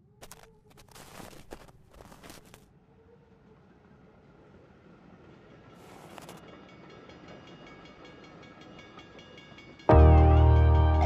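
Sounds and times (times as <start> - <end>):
train: 2.8 - 11.0.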